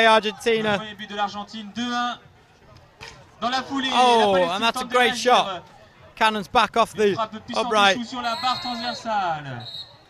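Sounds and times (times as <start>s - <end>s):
high steady whistle tone: 8.2s - 10.0s
short whistle blast: 9.6s - 10.0s.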